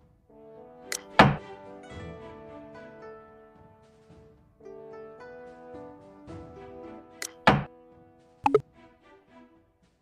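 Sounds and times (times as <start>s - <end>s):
background music: 0.0s - 10.0s
quick double click: 7.2s - 7.7s
wooden game piece clack: 7.2s - 7.7s.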